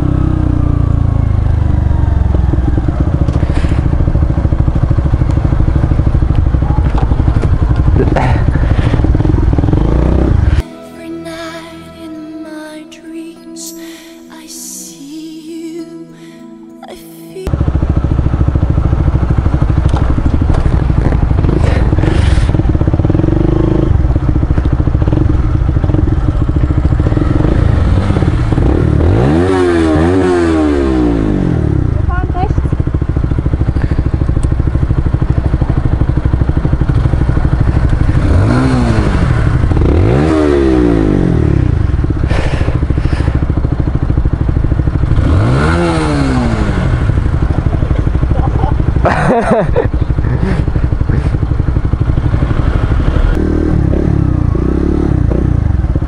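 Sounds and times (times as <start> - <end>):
motorcycle engine idling: 0.0 - 10.6, 17.5 - 56.0
engine throttle blips: 0.0 - 10.8, 17.4 - 56.0.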